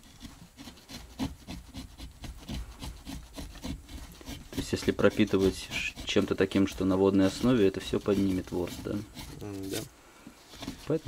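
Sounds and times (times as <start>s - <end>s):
chisel shaving wood: 0.0s - 11.0s.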